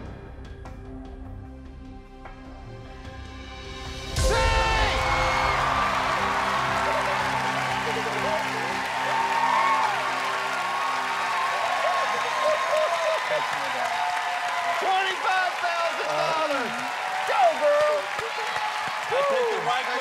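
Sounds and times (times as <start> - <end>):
game show musical sting: 4.2 - 11.8
audience cheering and applauding: 4.2 - 20.0.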